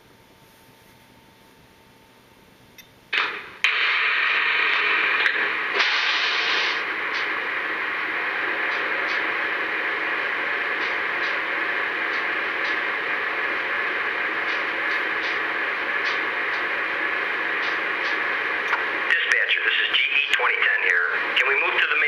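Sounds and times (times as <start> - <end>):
click: 2.7 - 3.0
recorded diesel locomotive running: 3.2 - 22.0.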